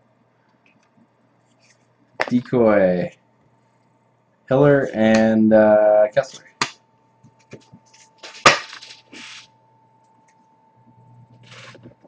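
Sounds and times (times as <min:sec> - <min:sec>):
card wrappers rustling: 0:07.9 - 0:09.5.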